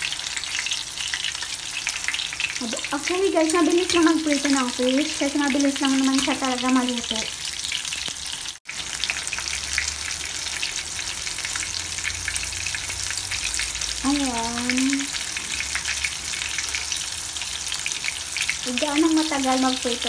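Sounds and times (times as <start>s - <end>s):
fish sizzling in hot oil: 0.0s - 20.0s.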